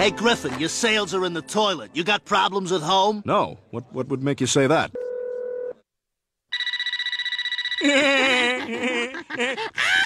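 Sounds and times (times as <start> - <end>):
telephone line tone: 6.5 - 8.0
phone ringing with trilling ring: 6.5 - 8.2.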